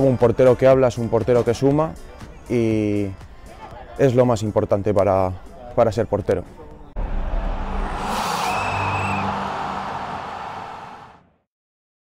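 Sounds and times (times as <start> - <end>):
low boom: 7.0 - 10.3
whoosh: 7.0 - 11.2.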